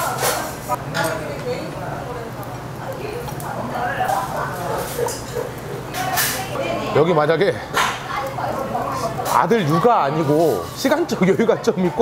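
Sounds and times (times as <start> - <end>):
faint indistinct voices: 0.0 - 12.0
tableware clinking: 4.0 - 6.6.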